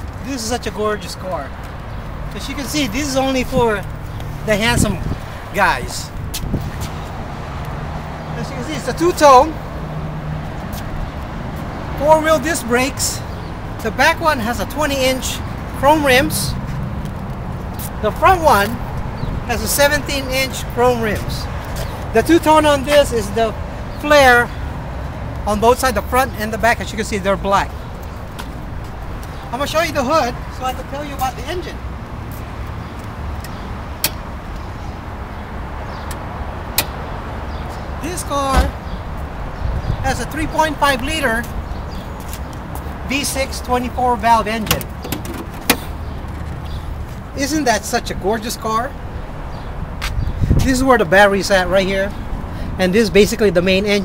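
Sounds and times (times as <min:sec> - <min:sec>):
vehicles: 0:00.0 - 0:54.0.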